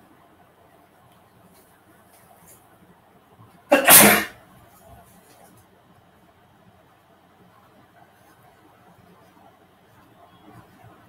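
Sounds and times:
man sneezing: 3.7 - 4.3.

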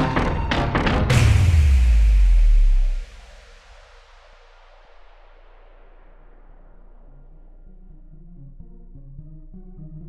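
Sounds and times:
deep bass tone: 0.0 - 4.0.

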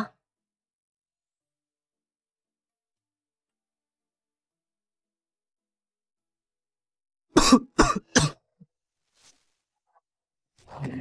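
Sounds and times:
person coughing: 7.3 - 8.6.

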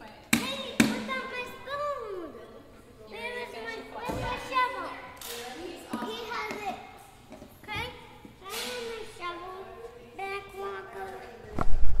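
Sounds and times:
young child's vocal phrases: 0.4 - 2.5.

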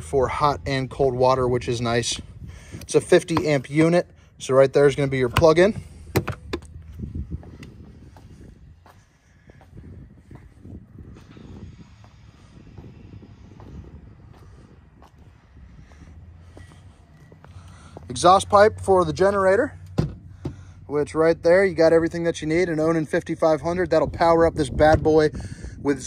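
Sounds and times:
footsteps on asphalt: 2.2 - 4.1, 4.9 - 19.4.

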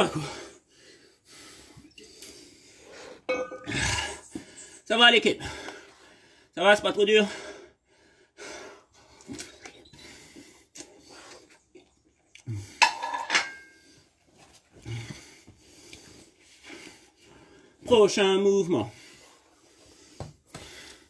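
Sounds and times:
heavy breathing: 0.0 - 6.6, 7.2 - 11.7, 13.7 - 17.8, 18.8 - 21.0
plate clattering on tile floor: 12.8 - 13.7.

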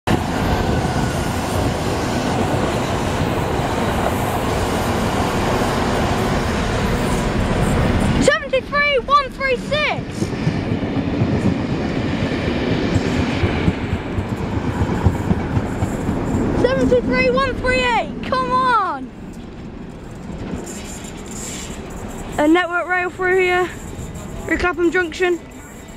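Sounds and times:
trains rolling past: 0.1 - 25.9.

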